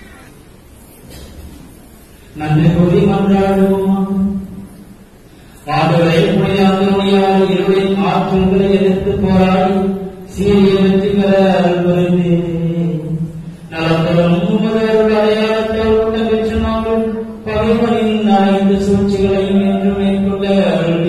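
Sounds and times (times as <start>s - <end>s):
man chanting a prayer: 2.4s - 4.7s, 5.6s - 21.0s.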